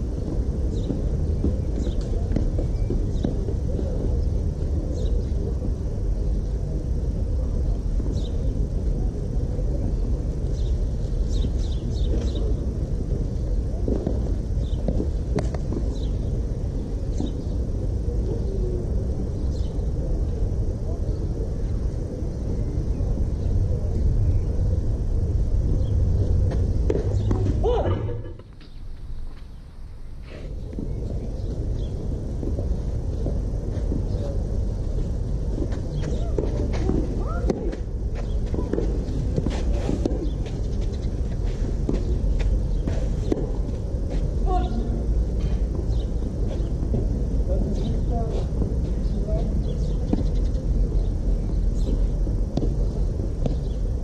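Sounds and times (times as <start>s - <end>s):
low outdoor rumble: 0.0s - 54.0s.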